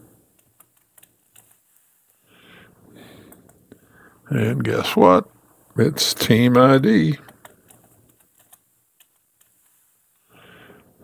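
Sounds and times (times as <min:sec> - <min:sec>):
computer keyboard typing: 0:00.3 - 0:01.6, 0:07.2 - 0:09.5.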